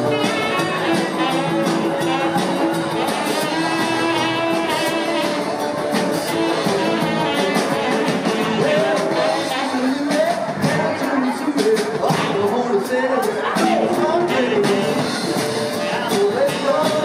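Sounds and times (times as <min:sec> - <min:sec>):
live rock band playing: 0:00.0 - 0:17.0
steady drum beat: 0:00.0 - 0:17.0.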